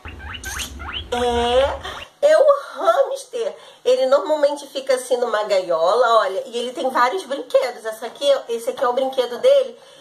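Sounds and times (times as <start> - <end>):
hamster squeaking: 0.0 - 2.1
low hum: 0.0 - 2.1.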